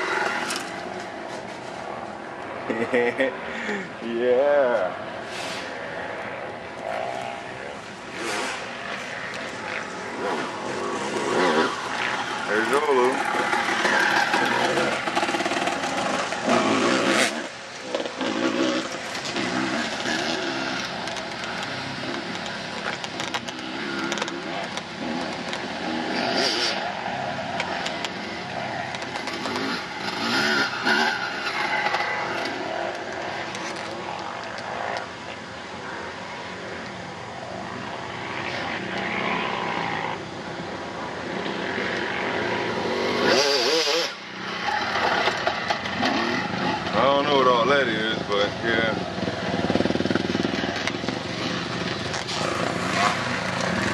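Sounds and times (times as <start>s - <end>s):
dirt bike engines revving: 0.0s - 53.9s.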